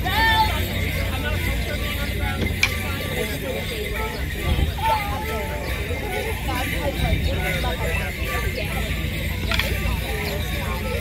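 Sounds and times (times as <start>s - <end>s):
spectators chatting: 0.0s - 11.0s
wind rumble on microphone: 4.2s - 8.3s.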